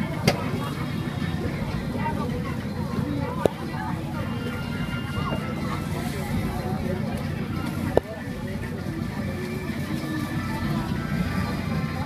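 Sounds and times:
faint chatter: 0.0 - 12.0
low rumble of traffic: 0.0 - 12.0.

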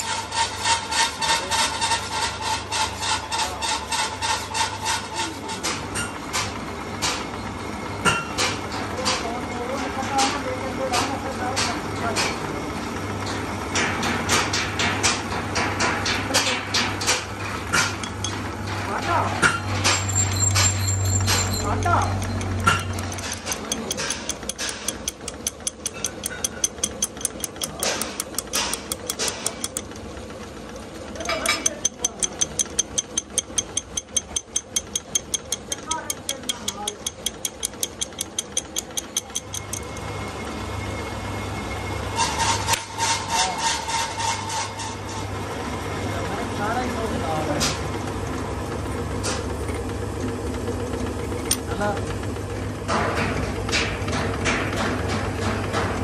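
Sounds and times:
tool clicking on gear teeth: 20.4 - 29.9, 31.2 - 40.0
lathe motor hum: 20.4 - 42.0.

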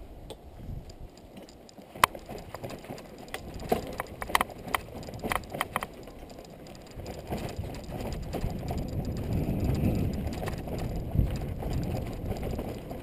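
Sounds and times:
bike tyres on dirt and gravel: 0.5 - 13.0
bike rattling and clicking: 0.7 - 13.0.

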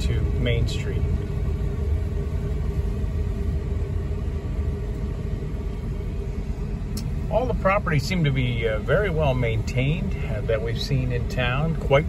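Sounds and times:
car engine and tyres rumbling: 0.0 - 12.0
faint steady hum: 0.0 - 12.0.

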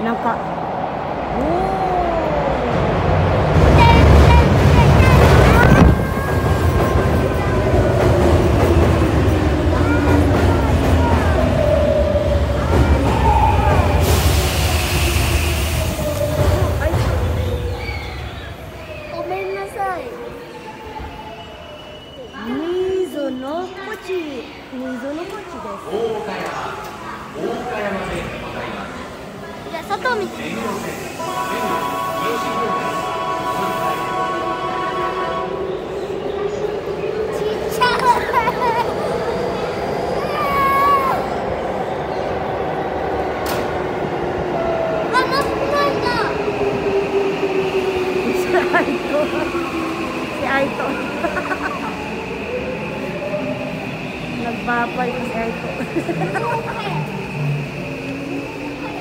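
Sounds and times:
train rumble: 0.0 - 22.1, 23.0 - 59.0
train brakes squealing: 13.1 - 24.4, 48.0 - 59.0.

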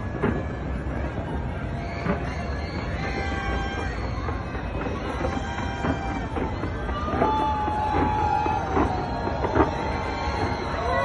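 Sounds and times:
fireworks barrage rumbling: 0.0 - 11.0
fireworks crackling: 0.0 - 11.0.

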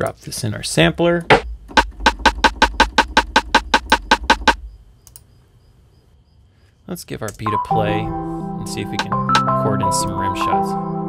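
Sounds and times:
rapid rim shot clicks: 1.3 - 4.6.

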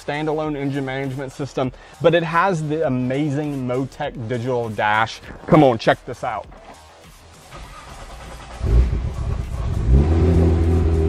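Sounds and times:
car engine starting and idling: 7.4 - 11.0
engine cranking whir: 7.5 - 10.8.

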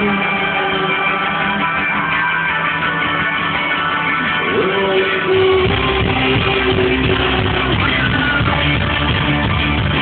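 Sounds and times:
rock band playing live: 0.0 - 10.0.

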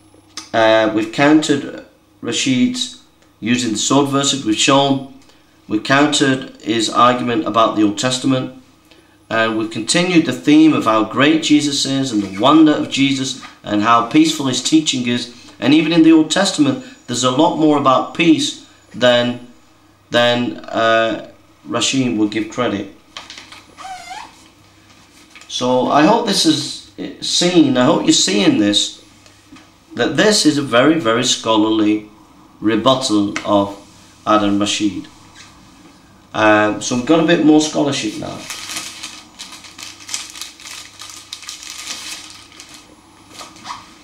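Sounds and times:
paper rustling: 23.2 - 25.5, 38.1 - 44.0
creaky squeak: 23.8 - 24.4.

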